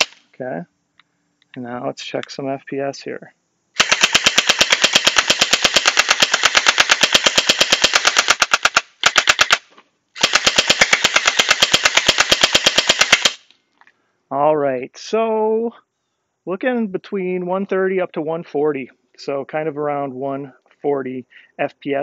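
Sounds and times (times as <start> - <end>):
gel blaster rapid firing: 3.8 - 9.6, 10.2 - 13.4.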